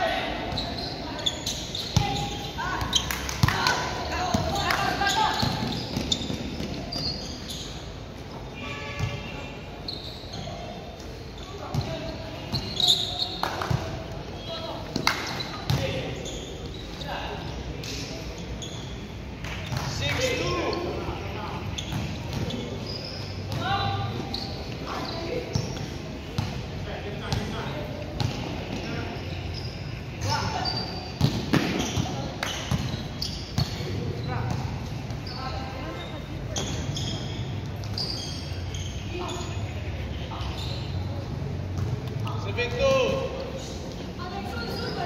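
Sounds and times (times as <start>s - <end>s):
basketball bouncing on gym floor: 31.2s - 33.0s.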